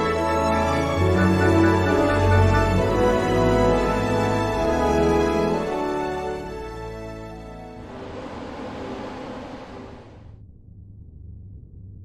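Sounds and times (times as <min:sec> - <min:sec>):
low rumble: 0:07.6 - 0:12.0
rushing noise: 0:07.7 - 0:10.4.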